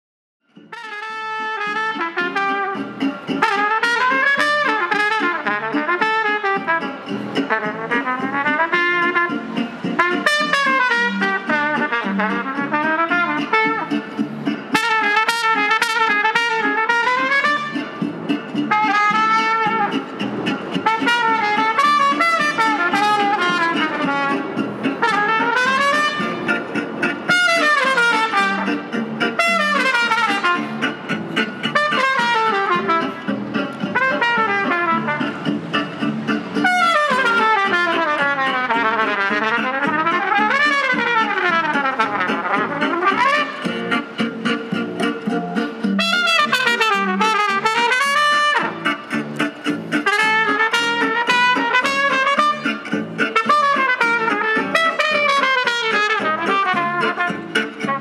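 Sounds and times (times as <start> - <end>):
trumpet melody with quick runs: 0.7 - 35.5, 36.6 - 44.2, 45.1 - 49.2, 49.9 - 58.0.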